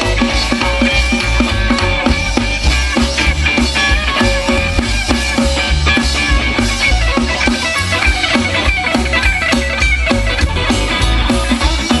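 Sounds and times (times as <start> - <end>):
bass guitar: 0.0 - 12.0
drum kit steady beat: 0.0 - 12.0
electric guitar: 0.0 - 12.0.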